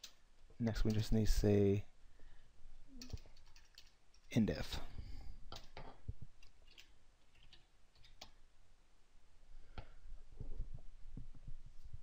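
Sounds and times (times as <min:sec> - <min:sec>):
computer keyboard typing: 0:03.0 - 0:04.2, 0:05.5 - 0:08.4.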